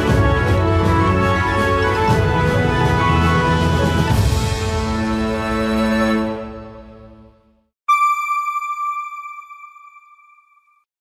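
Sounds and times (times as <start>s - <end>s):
electronic chime: 7.9s - 10.9s.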